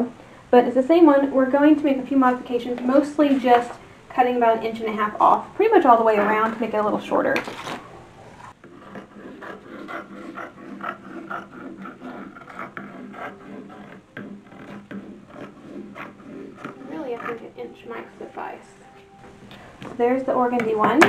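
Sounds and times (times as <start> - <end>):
paper and cloth rustling: 6.4 - 8.6
fabric shears snipping: 7.3 - 7.9.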